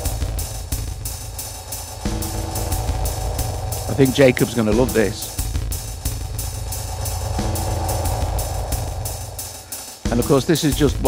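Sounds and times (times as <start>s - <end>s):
drum machine dub rhythm with echo: 0.0s - 7.6s
held low tone: 0.0s - 10.4s
low bass: 0.0s - 10.5s.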